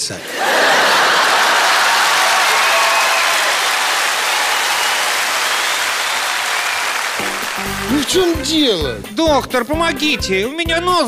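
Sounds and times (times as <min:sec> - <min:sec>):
studio audience applauding: 0:00.0 - 0:08.9.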